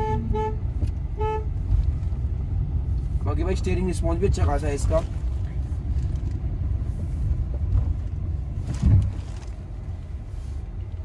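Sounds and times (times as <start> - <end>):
car engine and road noise: 0.0 - 11.0
short thump: 8.6 - 9.4.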